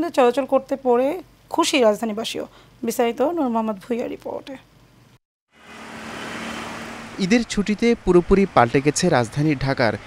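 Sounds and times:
street traffic: 5.5 - 10.0.

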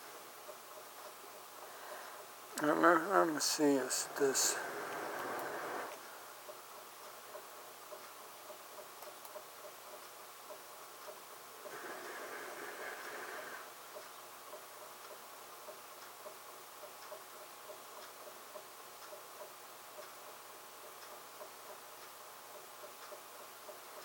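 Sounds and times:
faint regular ticking: 0.1 - 24.0
hissing noise: 2.7 - 6.1, 11.6 - 13.8.

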